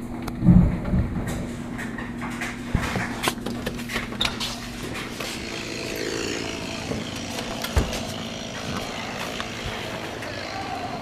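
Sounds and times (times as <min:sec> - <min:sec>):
engine running: 0:02.4 - 0:11.0.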